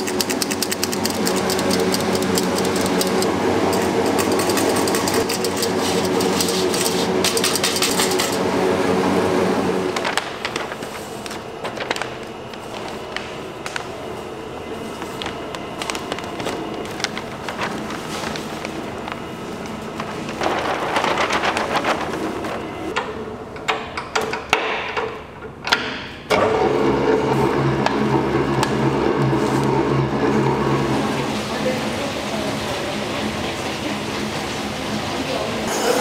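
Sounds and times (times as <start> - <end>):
whisk whirring and splashing: 0.0 - 9.9
stand mixer motor hum: 0.0 - 10.0, 26.3 - 36.0.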